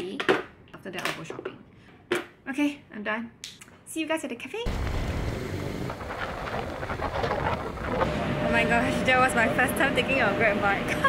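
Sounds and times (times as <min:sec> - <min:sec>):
road and traffic noise: 0:04.7 - 0:11.0
wind buffeting microphone: 0:04.7 - 0:11.0.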